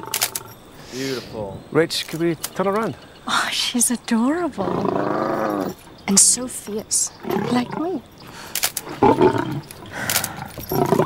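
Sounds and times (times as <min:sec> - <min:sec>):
tiger roaring: 0:04.6 - 0:05.8, 0:07.2 - 0:08.1, 0:08.8 - 0:11.0.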